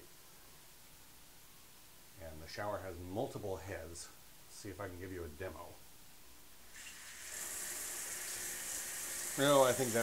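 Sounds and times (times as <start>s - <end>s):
shower water spraying: 6.7s - 10.0s.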